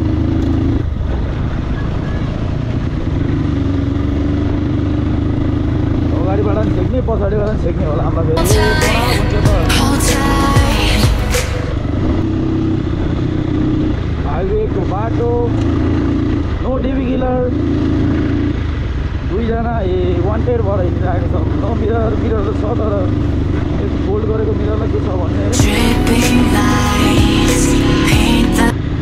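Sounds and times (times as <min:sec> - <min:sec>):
person speaking: 0:08.4 - 0:11.8, 0:25.5 - 0:28.7.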